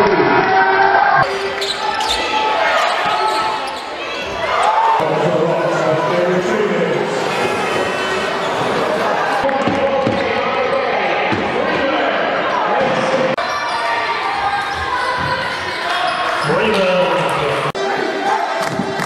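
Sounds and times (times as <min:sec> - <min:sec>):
voices in a hall: 0:00.0 - 0:19.0
sneaker squeaks: 0:01.3 - 0:05.0.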